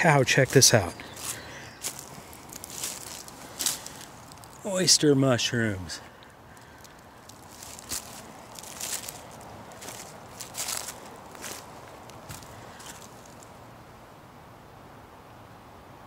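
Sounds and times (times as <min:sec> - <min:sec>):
footsteps on dry leaves and twigs: 0:00.0 - 0:05.1, 0:05.7 - 0:13.6.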